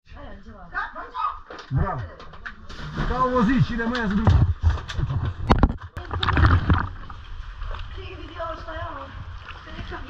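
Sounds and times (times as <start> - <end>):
water splashing and sloshing: 2.3 - 10.0.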